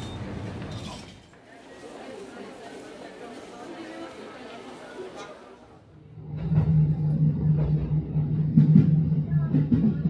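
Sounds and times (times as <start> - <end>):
train carriage rumble and hum: 6.0 - 10.0.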